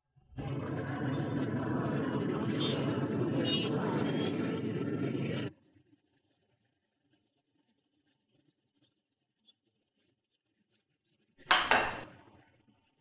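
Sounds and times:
road traffic rumble: 0:00.4 - 0:05.5.

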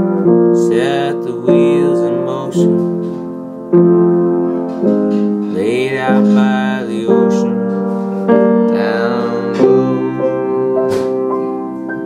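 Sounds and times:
keyboard held chords: 0:00.0 - 0:12.0.

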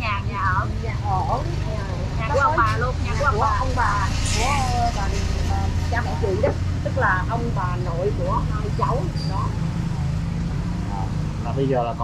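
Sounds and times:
people talking: 0:00.0 - 0:10.2, 0:10.9 - 0:12.0
motorbike passing: 0:00.0 - 0:12.0
traffic engine rumble: 0:00.0 - 0:12.0
truck passing: 0:00.0 - 0:12.0.

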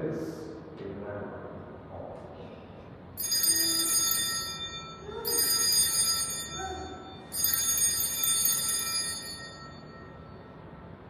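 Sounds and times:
altar bells ringing: 0:03.2 - 0:11.0.

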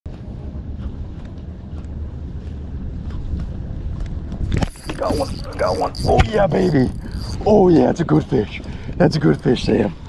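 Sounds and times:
water lapping at boat: 0:00.1 - 0:10.0
wind rumbling on microphone: 0:00.1 - 0:10.0.

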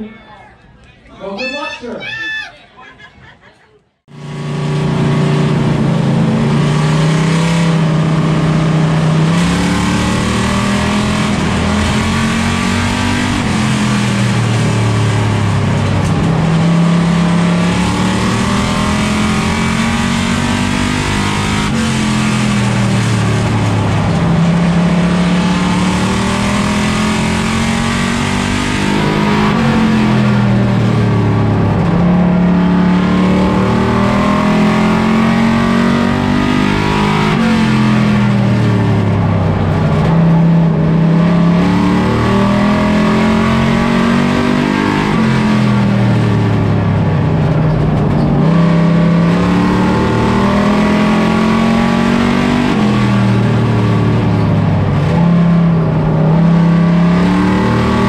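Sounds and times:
race car engine revving: 0:04.1 - 0:58.0.

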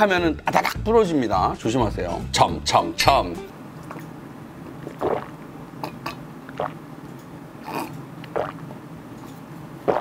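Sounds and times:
man gulping a drink: 0:04.8 - 0:06.8, 0:07.6 - 0:08.8.

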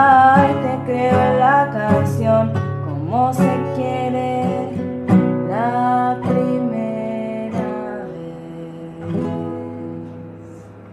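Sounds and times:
acoustic guitar strumming chords: 0:00.0 - 0:10.9.

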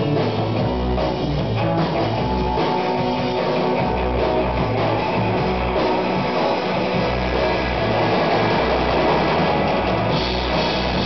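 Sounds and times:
electric guitar: 0:00.0 - 0:11.0
low rumbling bass: 0:00.0 - 0:11.0.

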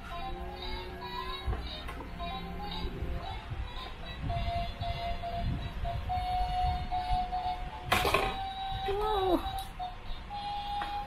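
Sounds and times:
toy claw machine electronic tune: 0:04.3 - 0:11.0.

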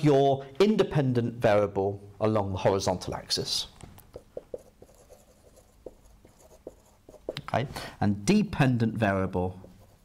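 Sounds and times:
marker writing on whiteboard: 0:04.0 - 0:07.6, 0:09.5 - 0:10.0.

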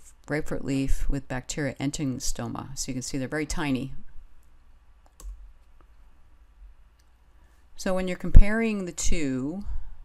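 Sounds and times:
faint mouse clicks: 0:04.4 - 0:06.0.

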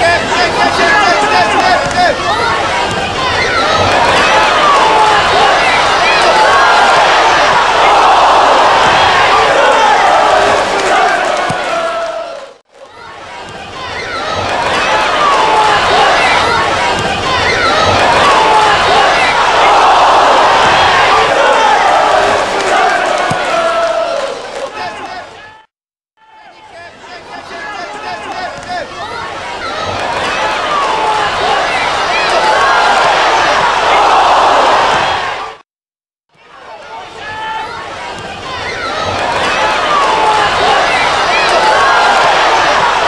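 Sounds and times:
stadium crowd shouting and chanting: 0:00.0 - 0:35.6, 0:36.3 - 0:43.0.

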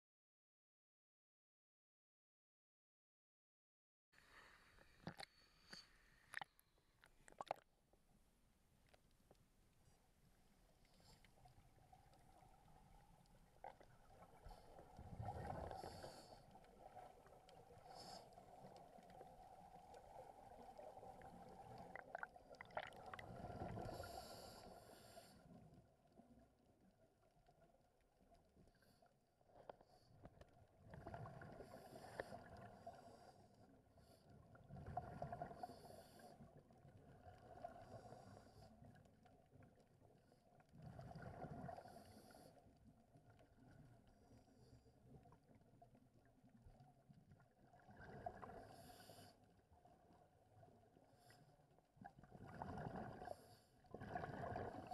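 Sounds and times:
underwater regulator exhalation bubbles: 0:52.3 - 0:54.9.

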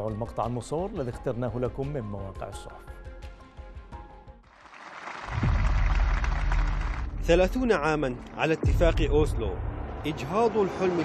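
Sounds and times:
crowd applauding: 0:04.5 - 0:07.5, 0:10.1 - 0:11.0.

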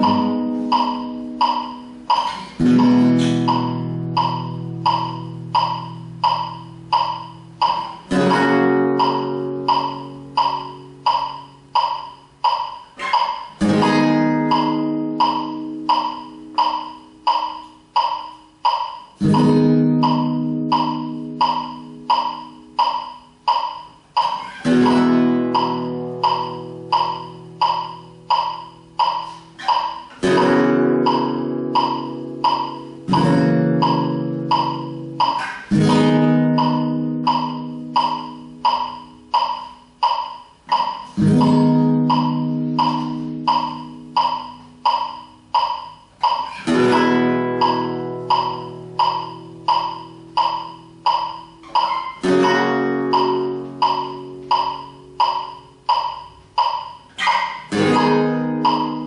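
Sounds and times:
flamenco guitar chords ringing: 0:00.0 - 0:59.0
metronome clicking: 0:00.0 - 0:59.0.

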